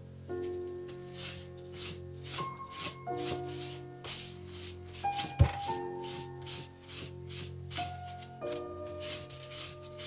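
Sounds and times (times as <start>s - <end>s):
cloth rubbing on wood veneer: 1.1s - 8.2s, 8.9s - 10.0s.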